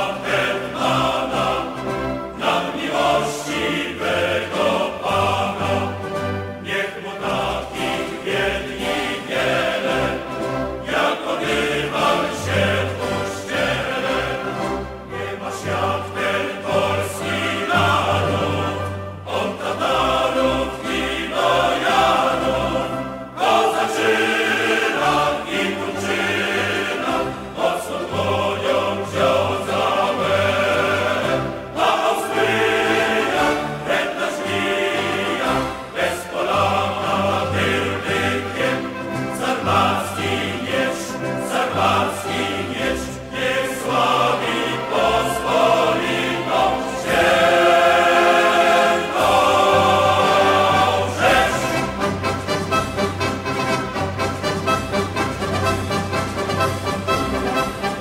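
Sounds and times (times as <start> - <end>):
choir singing a march: 0.0 - 58.0
instrumental accompaniment: 0.0 - 58.0.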